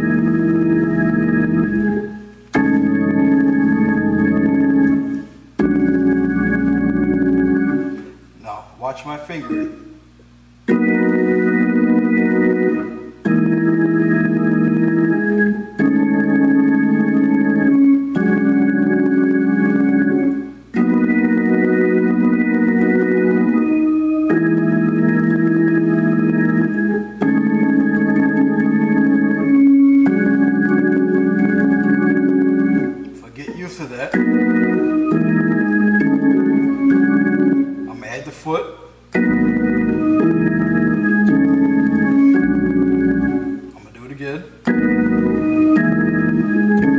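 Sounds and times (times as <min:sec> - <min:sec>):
gospel organ chords: 0:00.0 - 0:46.9.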